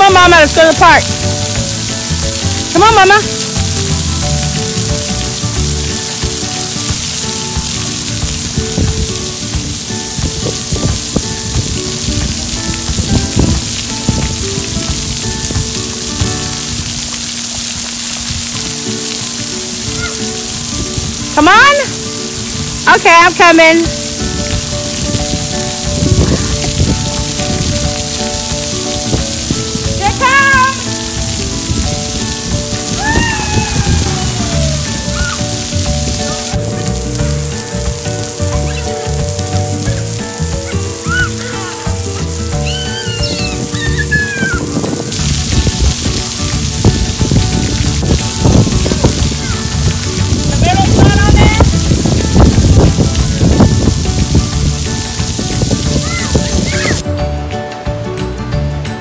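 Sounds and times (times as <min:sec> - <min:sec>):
background music: 0:00.0 - 0:59.0
water jets spraying and pattering: 0:00.0 - 0:59.0.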